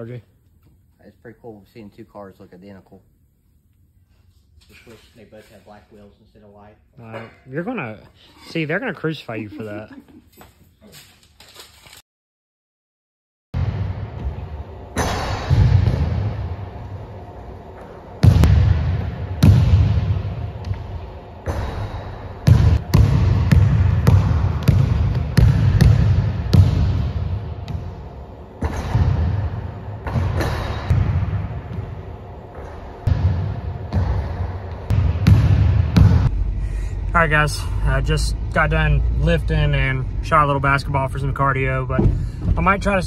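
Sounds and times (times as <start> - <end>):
basketball bouncing on hardwood floor: 18.2 - 20.8, 22.4 - 28.0, 33.0 - 36.3.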